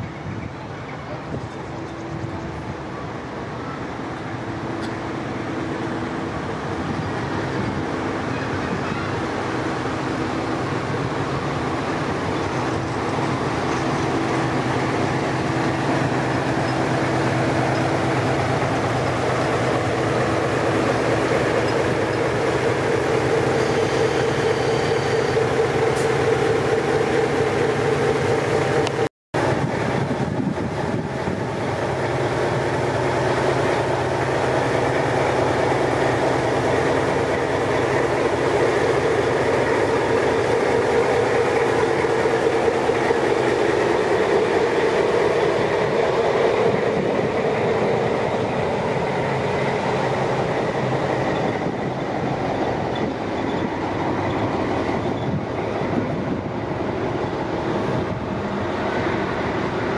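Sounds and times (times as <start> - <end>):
diesel engine drone: 0.0 - 59.9.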